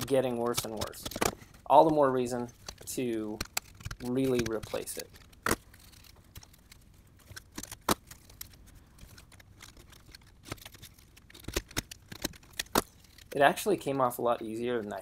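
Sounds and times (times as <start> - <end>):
sharp clicks and light knocks: 0.0 - 13.4.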